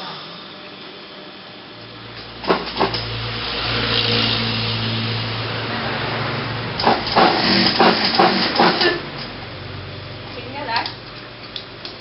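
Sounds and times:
sewing machine motor humming: 2.2s - 9.3s.

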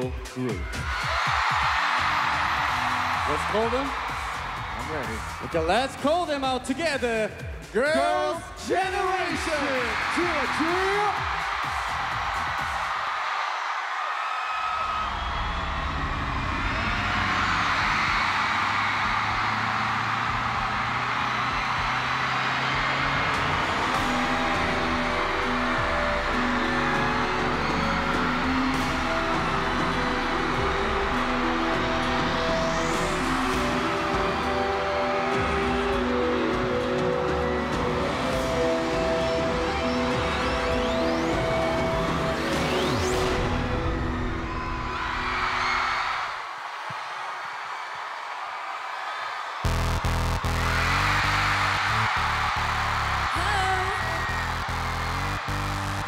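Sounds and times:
arena crowd cheering: 0.0s - 56.0s
sustained synthesizer chords: 49.7s - 51.4s.

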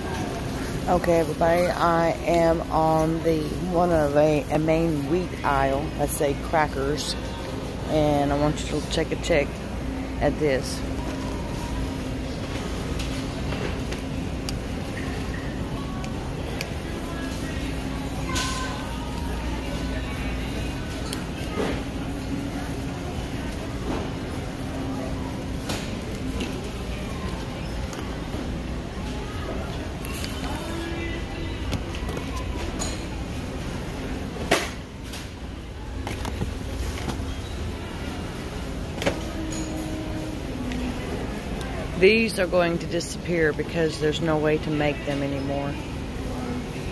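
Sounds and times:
grocery store hum and rumble: 0.0s - 46.9s.

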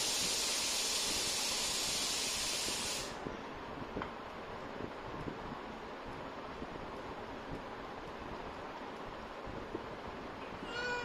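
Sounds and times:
cat meowing: 10.7s - 11.0s.

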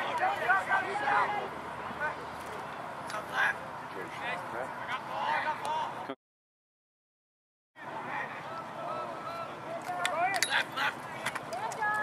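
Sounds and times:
distant voices shouting: 0.0s - 4.2s, 7.8s - 12.0s.

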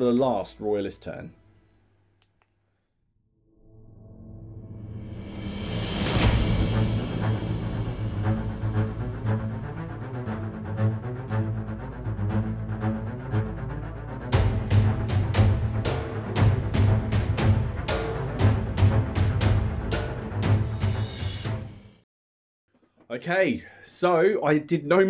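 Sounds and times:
background music: 0.0s - 2.0s, 3.8s - 22.0s
heavy percussion: 5.1s - 10.6s, 14.4s - 21.9s.

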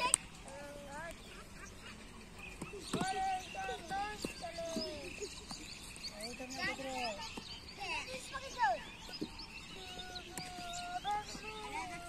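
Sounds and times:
children shouting: 9.8s - 12.0s.

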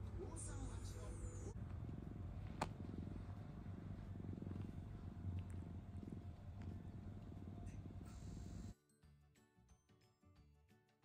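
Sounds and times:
cat purring: 0.0s - 8.7s.

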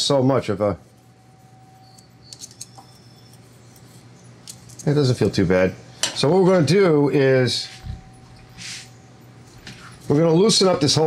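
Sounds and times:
feeler gauge scraping metal: 0.8s - 5.0s.

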